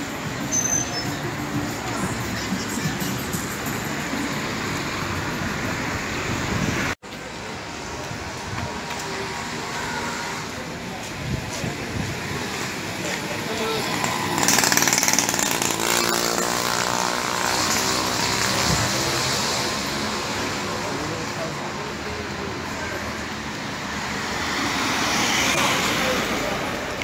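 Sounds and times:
street traffic: 0:00.0 - 0:27.0
small motorcycle passing: 0:13.5 - 0:20.3.

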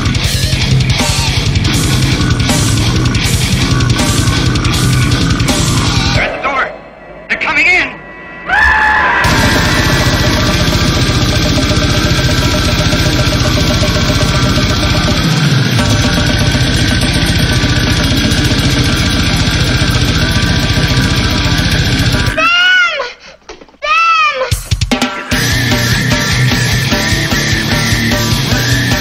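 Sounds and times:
death metal band playing: 0:00.0 - 0:22.6, 0:24.5 - 0:29.0.

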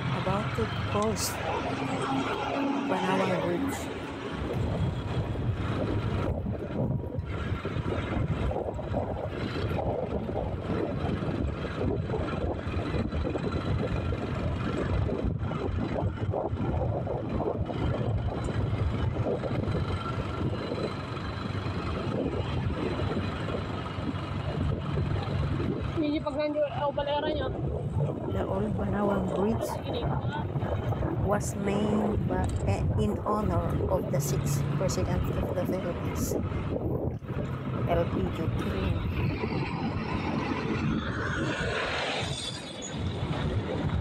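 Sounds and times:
vehicle engine running: 0:00.0 - 0:27.0, 0:27.6 - 0:42.1
road noise: 0:00.0 - 0:44.0.

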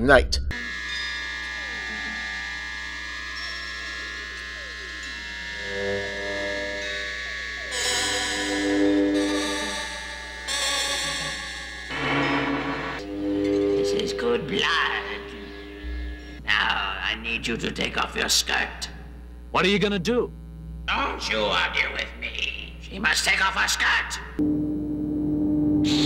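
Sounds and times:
low sustained chords: 0:00.5 - 0:16.5, 0:24.2 - 0:26.0
sustained electronic tones: 0:00.5 - 0:26.0.

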